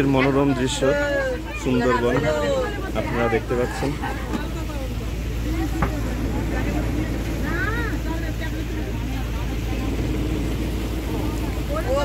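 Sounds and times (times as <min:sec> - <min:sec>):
boat engine droning: 0:00.0 - 0:12.0
faint voices: 0:00.0 - 0:12.0.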